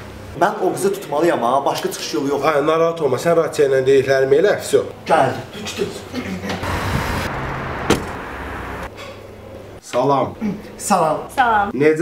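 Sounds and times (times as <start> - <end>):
car driving past: 6.6 - 8.9.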